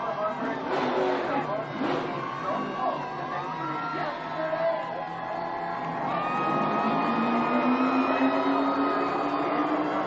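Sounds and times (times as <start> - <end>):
race car engine rising in pitch: 5.6 - 10.0.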